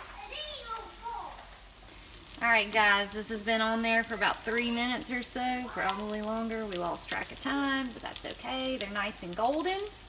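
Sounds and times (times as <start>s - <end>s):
food sizzling in oil: 0.0s - 10.0s.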